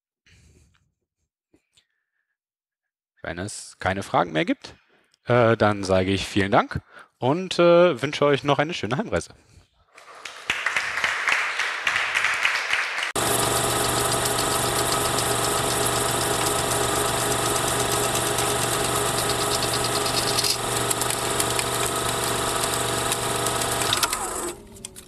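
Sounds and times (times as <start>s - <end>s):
audience applauding: 10.0s - 23.9s
film projector whirring: 13.2s - 25.0s.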